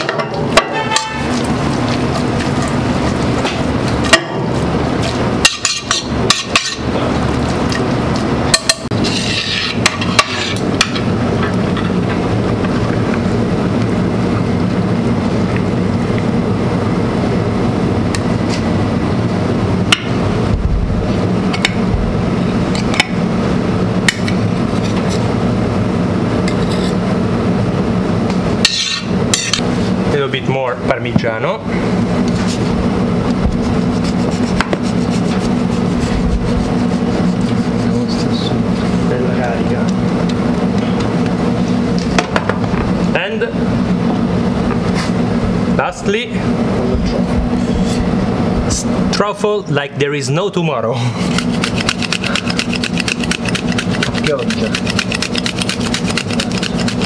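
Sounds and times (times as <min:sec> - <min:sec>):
kitchen hum: 0:00.0 - 0:57.0.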